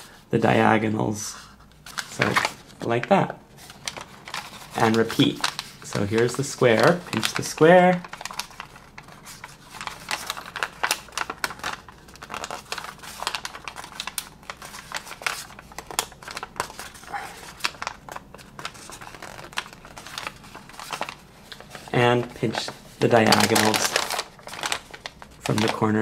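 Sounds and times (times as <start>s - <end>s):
paper crackling and crinkling: 1.3s - 26.0s.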